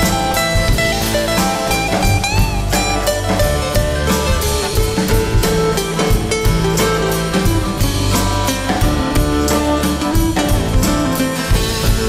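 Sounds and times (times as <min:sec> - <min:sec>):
acoustic and electric guitars: 0:00.0 - 0:12.0
bass guitar: 0:00.0 - 0:12.0
drum kit beat: 0:00.0 - 0:12.0.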